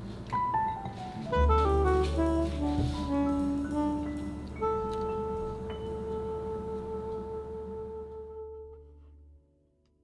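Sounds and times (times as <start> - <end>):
background music ringing chord: 0.3 - 9.4.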